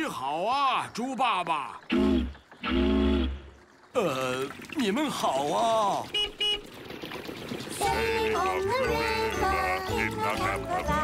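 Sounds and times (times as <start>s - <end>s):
cartoon horn toots: 1.9s - 3.5s.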